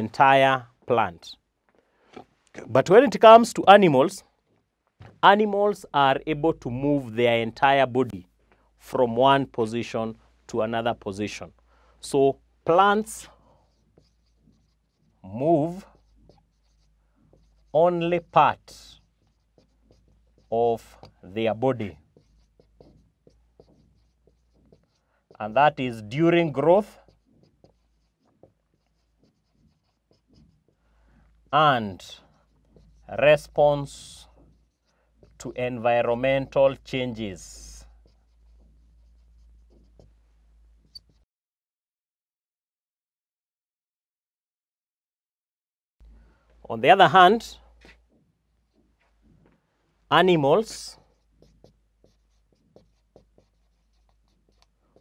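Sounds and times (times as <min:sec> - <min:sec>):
marker pen writing on whiteboard: 0:00.0 - 0:41.3, 0:46.0 - 0:55.0.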